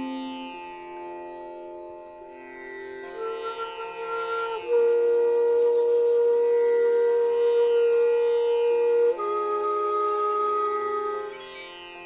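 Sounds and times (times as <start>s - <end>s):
bamboo flute note: 3.1s - 11.6s.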